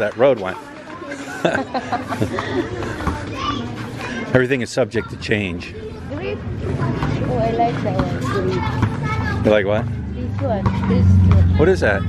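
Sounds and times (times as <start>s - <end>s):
children laughing: 0.9s - 4.3s
children calling out: 2.5s - 4.3s, 8.0s - 9.5s.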